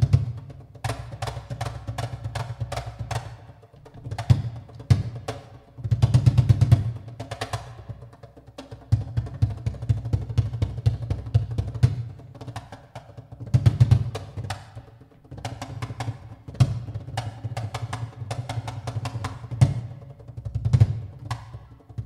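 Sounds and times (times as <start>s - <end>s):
cajon and drum kit groove: 0.0s - 22.0s.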